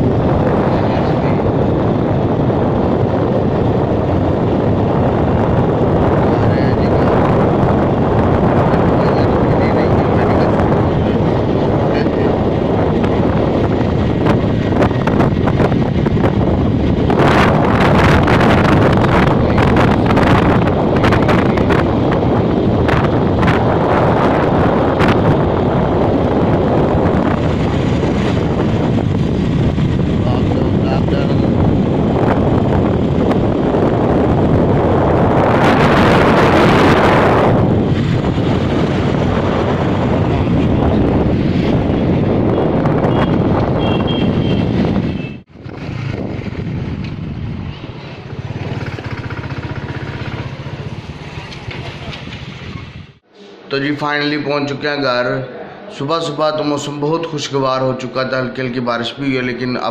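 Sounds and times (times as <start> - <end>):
motorcycle engine: 0.0 - 53.3
wind buffeting microphone: 0.0 - 54.6
road noise: 0.0 - 59.9.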